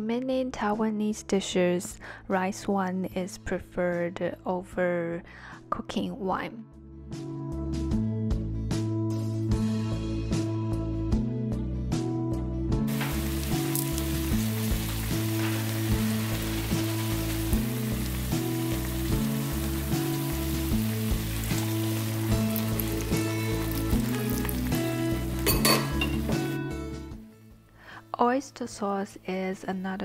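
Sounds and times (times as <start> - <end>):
background music: 0.1 - 30.0
crackling in frying pan: 12.9 - 26.6
meat and onions sizzling in pan: 12.9 - 27.0.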